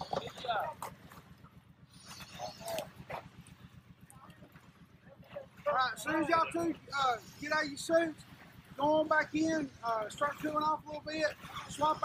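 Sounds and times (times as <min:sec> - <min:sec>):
low pulsing hum: 0:00.0 - 0:12.0.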